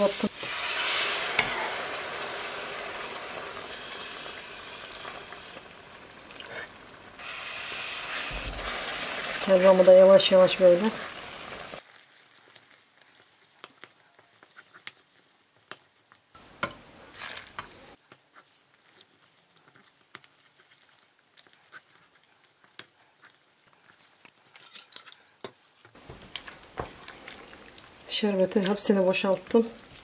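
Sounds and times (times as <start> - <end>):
spoon scraping metal pan: 0.0 - 1.7, 16.6 - 17.8
low sizzle: 0.0 - 24.6, 25.4 - 30.0.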